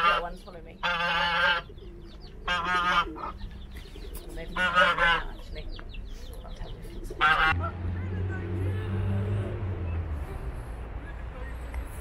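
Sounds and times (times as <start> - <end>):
goose honking: 0.0 - 1.7, 2.4 - 3.4, 4.5 - 5.6, 7.1 - 7.8
young birds peeping: 0.0 - 12.0.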